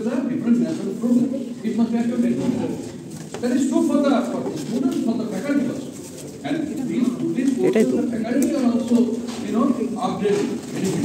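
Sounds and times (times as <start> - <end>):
man speaking over loudspeakers: 0.0 - 11.0.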